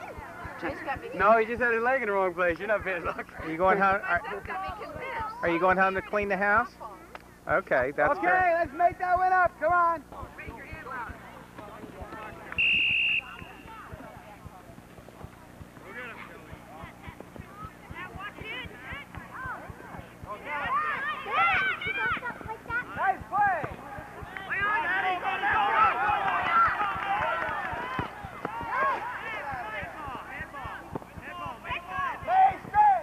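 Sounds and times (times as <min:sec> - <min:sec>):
low steady hum: 0:00.0 - 0:33.0
players calling and shouting: 0:00.0 - 0:33.0
referee's whistle blast: 0:12.6 - 0:13.8.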